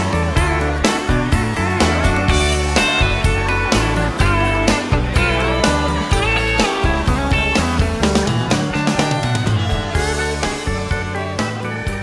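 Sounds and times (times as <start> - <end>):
bass and drum beat: 0.0 - 12.0
sliding guitar lines: 0.0 - 12.0.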